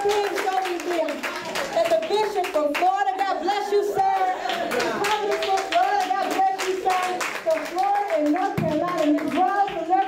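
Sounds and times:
handclaps: 0.0s - 3.0s, 4.1s - 10.0s.

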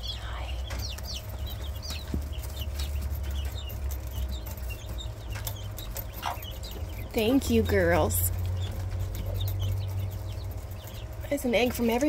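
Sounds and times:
quail chirping: 0.0s - 12.0s.

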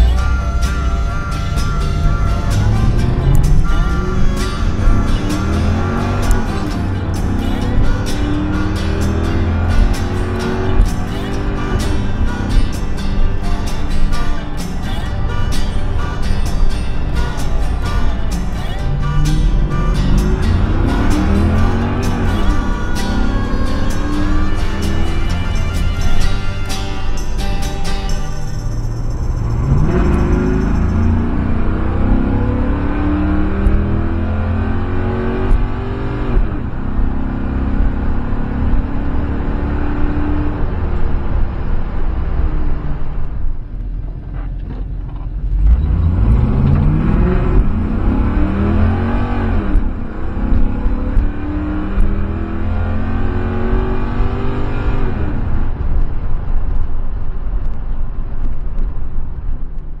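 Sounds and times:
car engine revving through gears: 0.0s - 57.8s.

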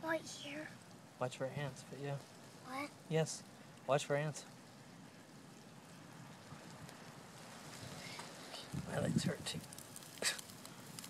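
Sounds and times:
low outdoor hiss: 0.0s - 11.0s.

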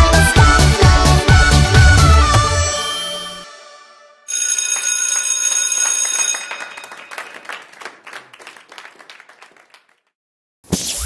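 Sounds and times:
electronic dance music: 0.0s - 3.8s
bell-like chime jingle: 2.6s - 3.6s, 4.3s - 7.3s.

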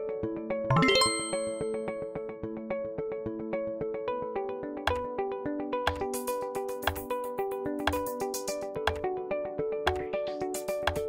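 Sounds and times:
light plucked background music: 0.5s - 11.0s
bright bell-like ding: 0.7s - 1.8s.

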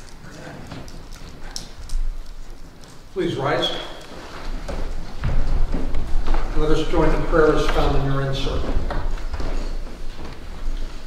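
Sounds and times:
faint room murmur: 0.0s - 11.0s.

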